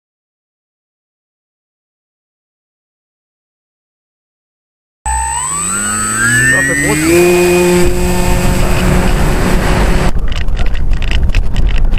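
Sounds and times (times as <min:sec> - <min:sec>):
model plane motor whining: 0:05.1 - 0:10.1.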